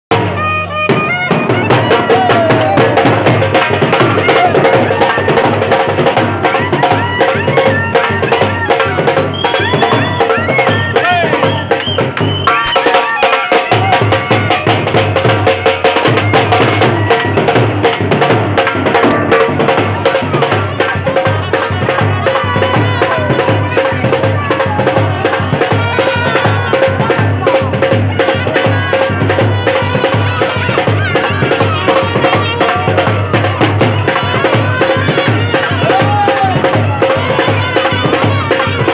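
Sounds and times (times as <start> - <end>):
crowd voices: 0.1 - 38.9
large drums beating: 0.1 - 38.9
trumpet bending notes: 12.5 - 38.9.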